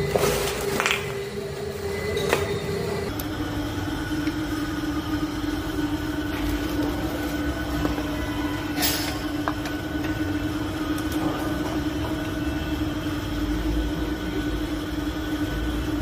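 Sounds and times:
mechanical hum: 0:00.0 - 0:16.0.

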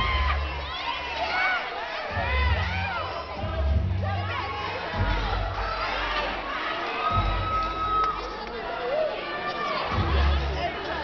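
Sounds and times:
audience cheering and shouting: 0:00.0 - 0:11.0.

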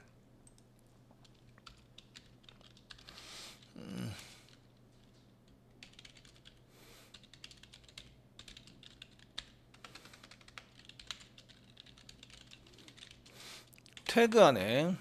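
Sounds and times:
faint keyboard typing: 0:00.4 - 0:14.2.

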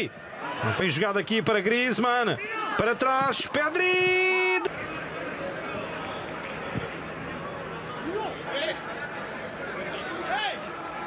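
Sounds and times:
stadium hum: 0:00.0 - 0:11.0.

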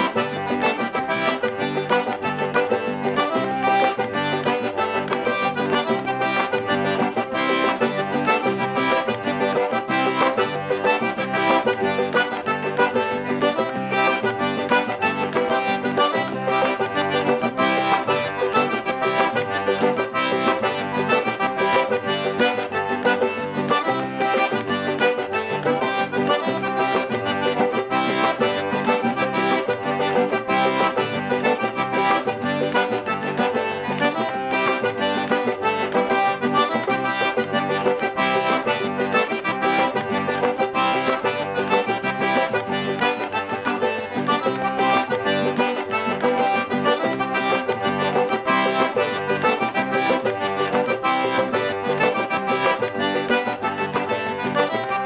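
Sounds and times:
accordion dance tune: 0:00.0 - 0:55.0.

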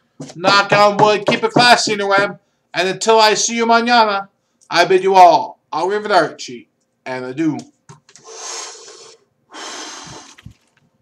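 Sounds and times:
man blowing out breath: 0:08.2 - 0:10.6.

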